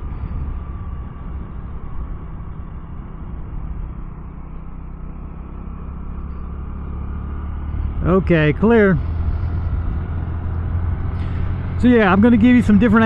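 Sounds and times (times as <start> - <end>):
motorcycle engine running: 0.0 - 13.0
wind and road noise: 0.0 - 13.0.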